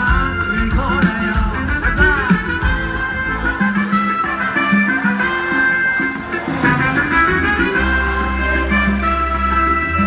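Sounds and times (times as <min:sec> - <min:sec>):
live band through speakers: 0:00.0 - 0:10.0.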